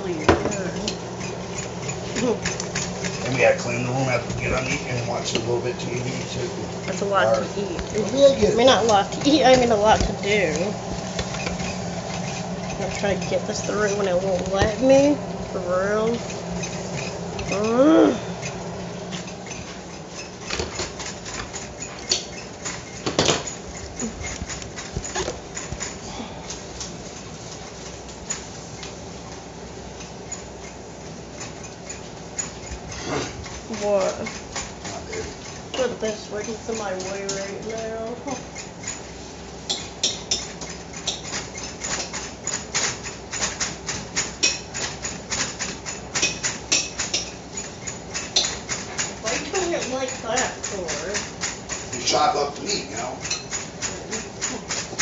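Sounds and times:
utensils scraping frying pans: 0.0 - 55.0.

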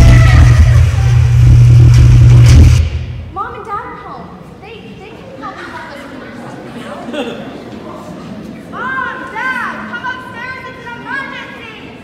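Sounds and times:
loud low rumble: 0.0 - 3.4.

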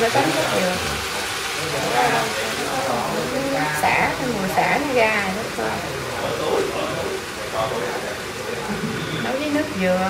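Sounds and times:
faint steady hiss: 0.0 - 10.0
people talking: 0.0 - 10.0.

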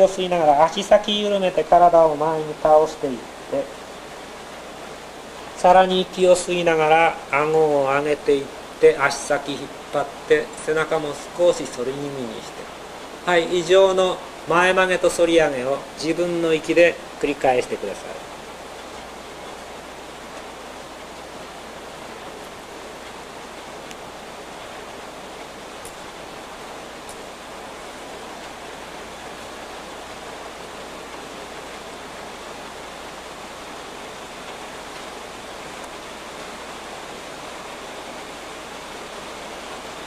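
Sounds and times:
background recording hiss: 0.0 - 40.0.

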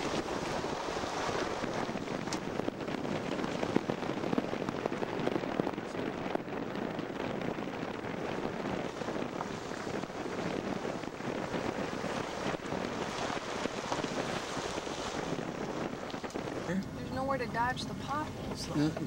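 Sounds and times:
gravel crackling under tyres: 0.0 - 19.0
van tyre and road noise: 0.0 - 19.0.

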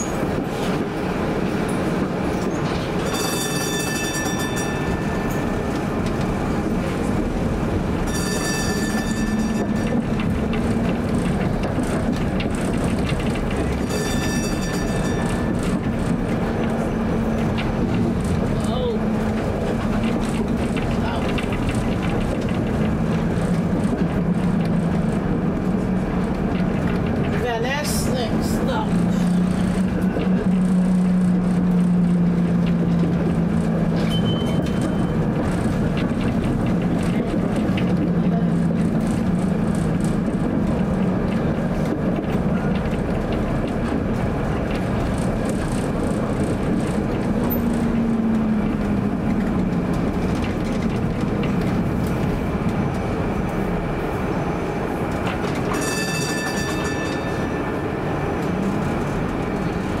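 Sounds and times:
streetcar motor hum: 0.0 - 60.0
streetcar wheels rumbling on rails: 0.0 - 60.0
high ringing tone: 3.0 - 5.5, 8.1 - 9.9, 13.8 - 15.6, 34.0 - 35.2, 55.7 - 57.6.

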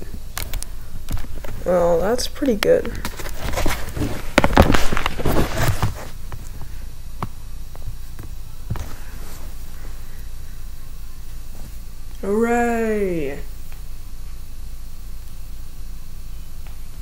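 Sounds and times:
rustling: 2.9 - 6.9.

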